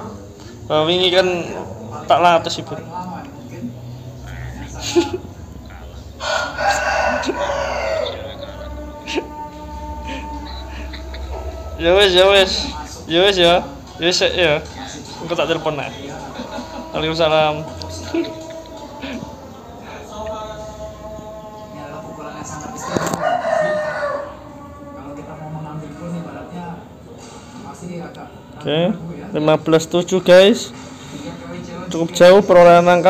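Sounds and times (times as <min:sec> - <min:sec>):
loud long animal call: 0:05.7 - 0:12.9.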